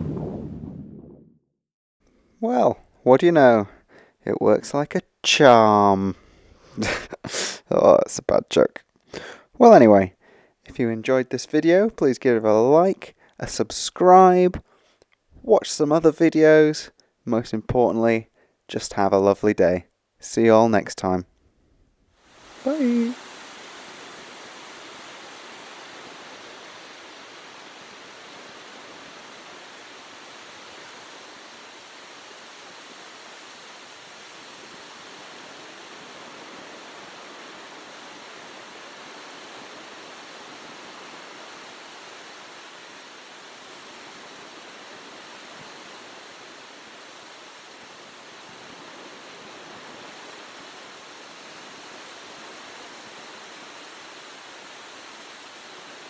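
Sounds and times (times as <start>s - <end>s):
ocean surf washing onto beach: 22.2s - 56.0s.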